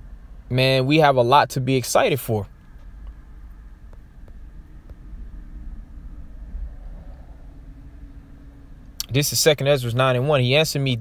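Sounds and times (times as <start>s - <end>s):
faint steady hum: 0.0s - 11.0s
low background rumble: 0.0s - 11.0s.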